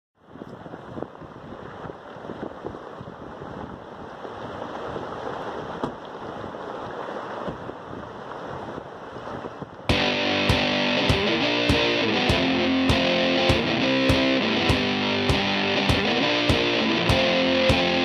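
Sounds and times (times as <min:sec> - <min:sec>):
guitar music: 0:09.9 - 0:18.0.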